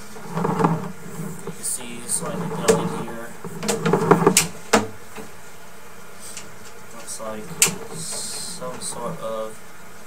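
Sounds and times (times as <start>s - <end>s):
person talking indistinctly: 1.4s - 4.0s.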